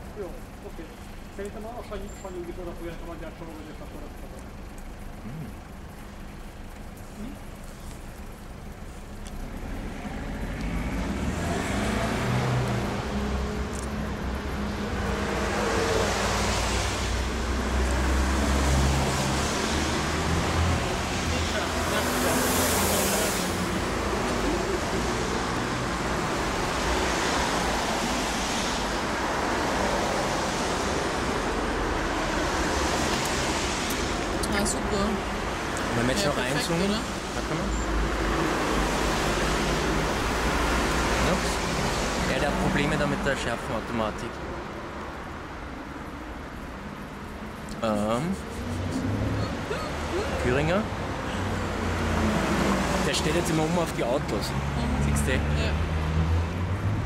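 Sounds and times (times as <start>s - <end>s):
road traffic: 0.0s - 57.0s
passing car hiss: 15.0s - 31.7s.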